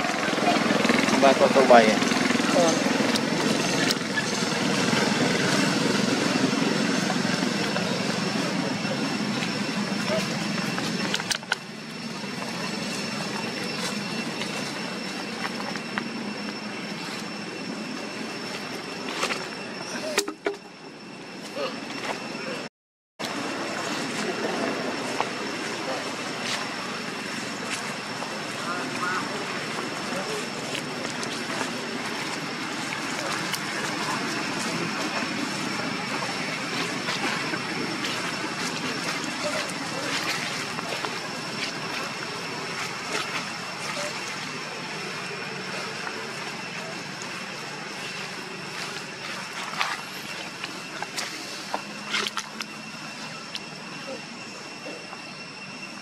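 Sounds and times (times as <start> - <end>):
steady outdoor noise: 0.0 - 56.0
thin high whine: 0.0 - 56.0
people talking in background: 23.5 - 51.5.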